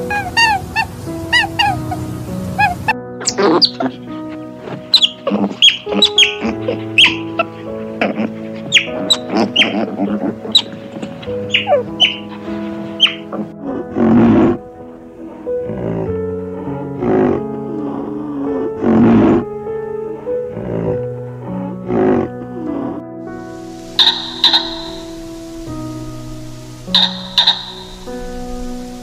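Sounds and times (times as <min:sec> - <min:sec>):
otters chirping: 0:00.0 - 0:13.5, 0:23.3 - 0:29.0
piano music: 0:00.0 - 0:29.0.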